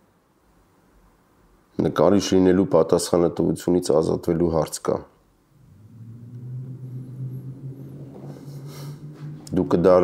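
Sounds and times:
low motor hum: 0:05.5 - 0:10.0.

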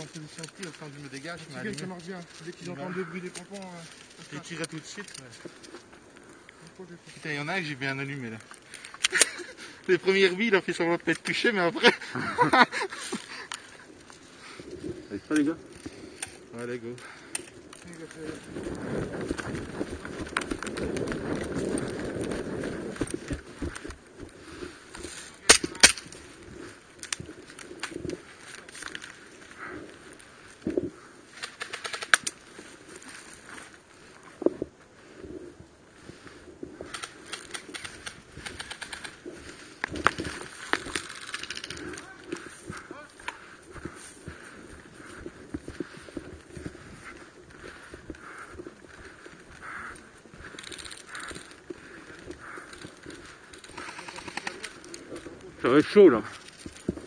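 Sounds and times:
footsteps in grass: 0:00.0 - 0:57.0.

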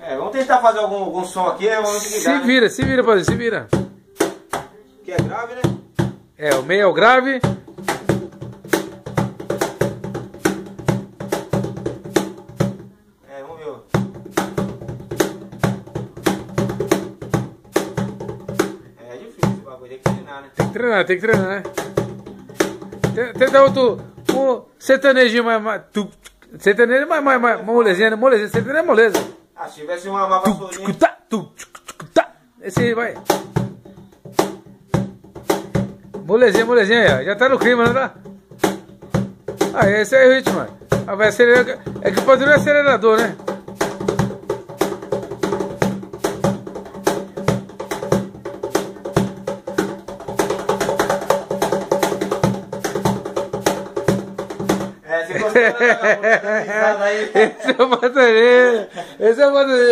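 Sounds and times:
cajon played by hand: 0:01.9 - 0:12.9, 0:13.9 - 0:24.6, 0:28.4 - 0:29.4, 0:30.4 - 0:55.0.

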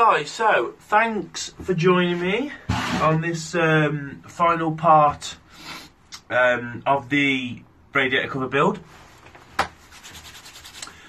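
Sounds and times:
hands rubbing together: 0:09.6 - 0:11.0.

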